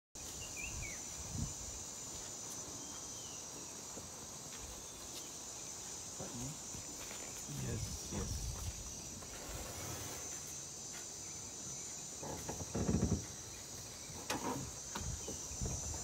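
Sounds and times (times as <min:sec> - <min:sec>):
bird chirp: 0:00.2 - 0:01.2
high-pitched insect chorus: 0:00.2 - 0:16.0.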